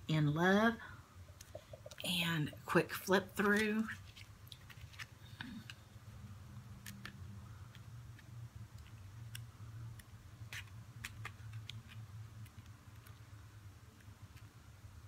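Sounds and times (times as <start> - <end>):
low steady hum: 0.0 - 15.0
paper pages flipping: 3.4 - 5.9, 10.0 - 13.2.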